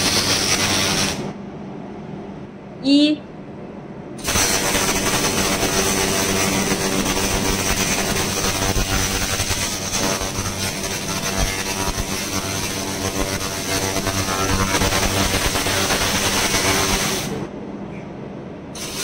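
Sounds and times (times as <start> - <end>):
laser cleaner crackling hiss: 0.0 - 1.3, 4.2 - 17.4, 18.8 - 19.0.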